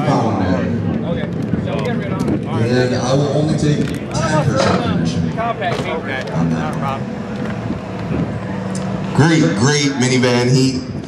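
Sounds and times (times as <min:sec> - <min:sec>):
car engine running: 0:00.1 - 0:11.0.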